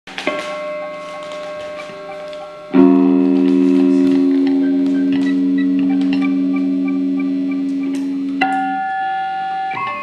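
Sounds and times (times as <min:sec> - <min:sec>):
electric guitar chord ringing: 0:00.3 - 0:10.0.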